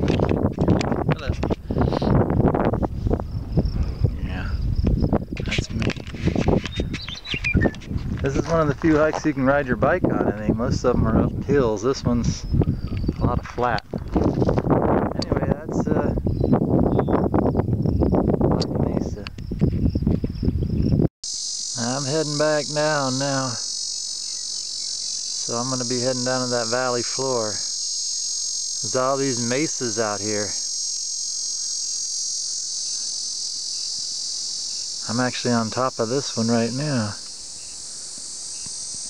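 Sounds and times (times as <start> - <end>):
loud high-pitched insect chorus: 0.0 - 18.2, 18.9 - 39.0
wind buffeting microphone: 0.0 - 21.1
high insect trill: 0.0 - 39.0.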